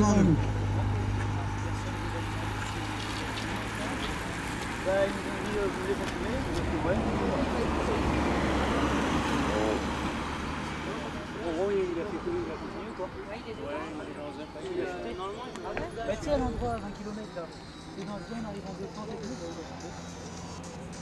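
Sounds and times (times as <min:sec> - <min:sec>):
low engine hum: 0:00.0 - 0:11.4
cars passing on road: 0:00.0 - 0:21.0.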